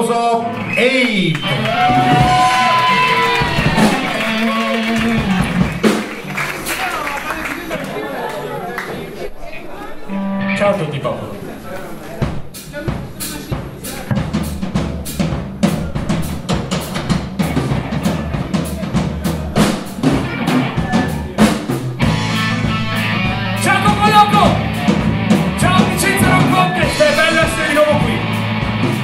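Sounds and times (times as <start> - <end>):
live rock band: 0.0 - 7.8, 12.0 - 29.0
drum kit beat: 0.5 - 7.8, 12.0 - 29.0.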